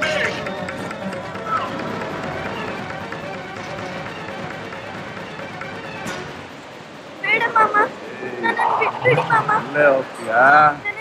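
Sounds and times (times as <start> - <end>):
rising cry: 8.0 - 9.8.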